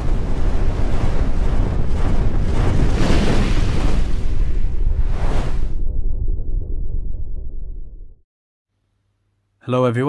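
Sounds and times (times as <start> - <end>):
deep noisy rumble: 4.3 - 8.2.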